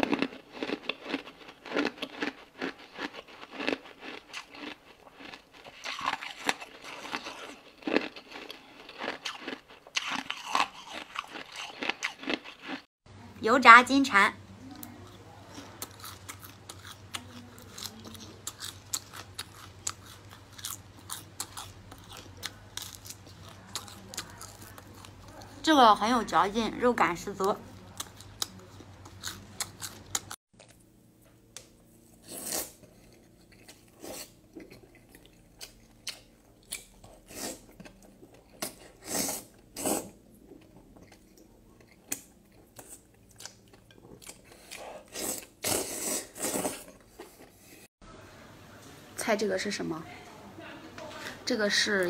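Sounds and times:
crunchy food being chewed: 0.0s - 12.9s, 14.7s - 25.6s, 27.5s - 30.9s, 31.6s - 47.9s.

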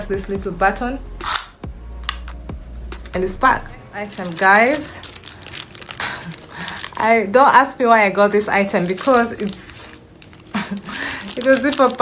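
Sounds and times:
tape measure winding back: 1.2s - 1.6s.

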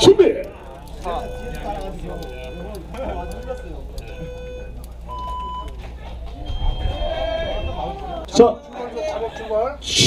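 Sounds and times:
voices: 0.0s - 10.0s
electronic start clock beeps: 0.9s - 5.8s.

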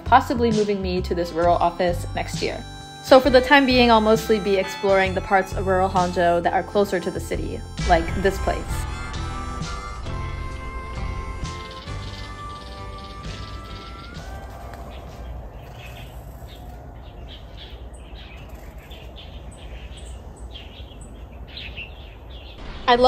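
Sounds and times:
background music: 0.0s - 15.6s
birds chirping: 0.0s - 23.0s
low outdoor background noise: 13.7s - 23.0s.

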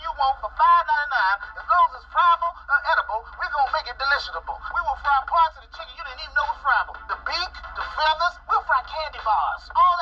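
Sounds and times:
steady low hum: 0.0s - 10.0s
man talking through small speaker: 0.1s - 10.0s.

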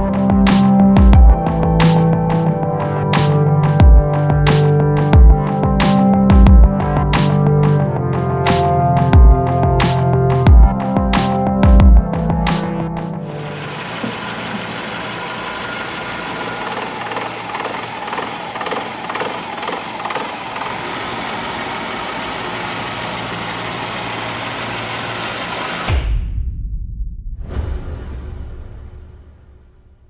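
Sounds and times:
car engine idling: 13.3s - 26.0s.

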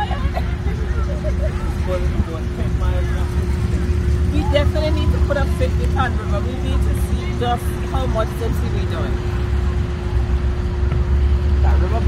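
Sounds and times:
generators running: 0.0s - 12.0s.

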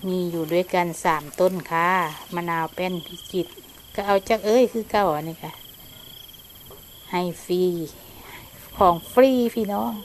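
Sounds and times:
insect trilling: 0.0s - 10.0s.

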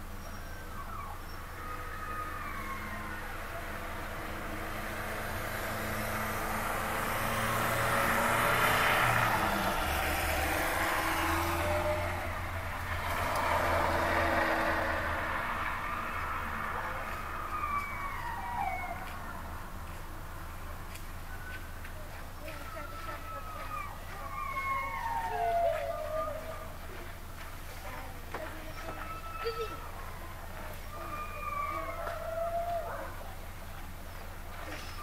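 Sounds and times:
vehicles driving past: 0.0s - 35.0s.

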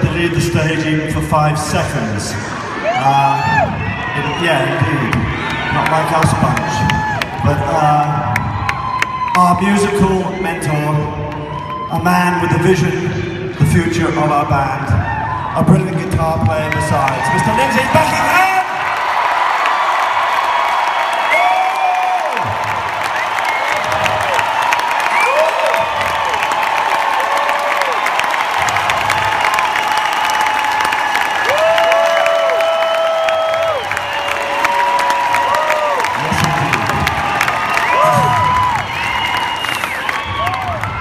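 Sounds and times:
crowd cheering and applauding: 0.0s - 13.4s, 15.0s - 41.0s
whoops and screams: 2.8s - 7.6s, 8.2s - 10.2s, 20.4s - 41.0s.

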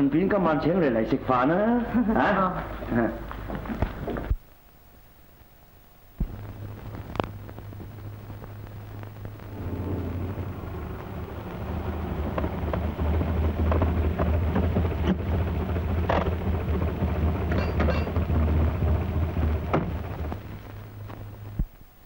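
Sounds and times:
car engine idling: 6.2s - 21.6s
car doors opening and shutting: 19.6s - 20.2s.

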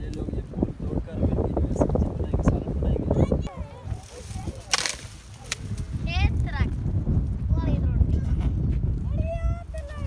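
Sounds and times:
stems rustling swish: 3.7s - 6.6s
stem snapping: 4.2s - 5.9s.

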